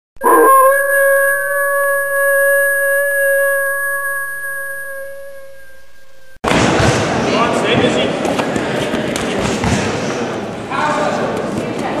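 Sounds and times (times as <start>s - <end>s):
dog or wolf howling: 0.2s - 6.4s.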